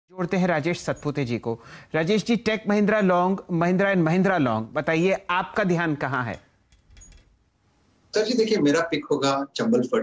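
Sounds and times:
man speaking: 1.9 - 6.4, 8.2 - 10.0.

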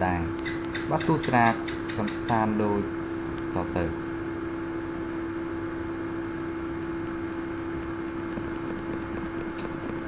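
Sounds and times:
low-pitched hum: 0.0 - 10.0.

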